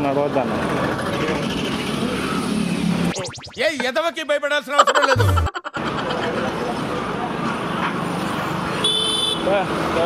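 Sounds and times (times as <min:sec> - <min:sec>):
vehicle engines on busy road: 0:00.0 - 0:03.1, 0:05.7 - 0:10.0
person speaking: 0:04.8 - 0:05.8.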